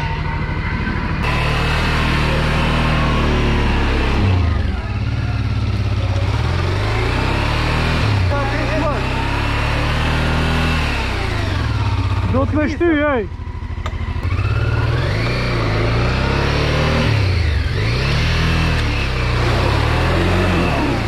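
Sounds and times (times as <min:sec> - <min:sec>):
motorcycle engines idling: 0:00.0 - 0:21.0.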